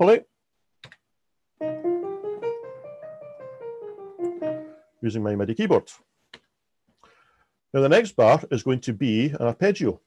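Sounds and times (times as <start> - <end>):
piano scale notes: 1.6 - 5.4.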